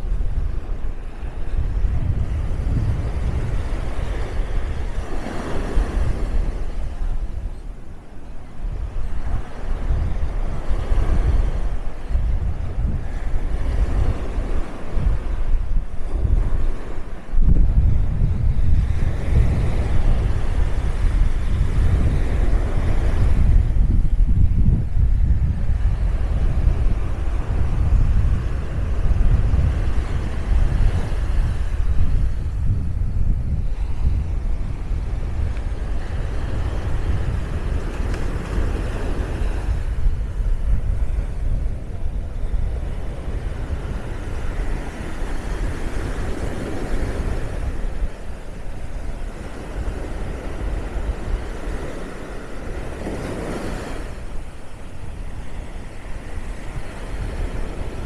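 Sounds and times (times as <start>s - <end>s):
surf breaking on sand: 0.0s - 58.0s
wind buffeting microphone: 0.0s - 58.0s.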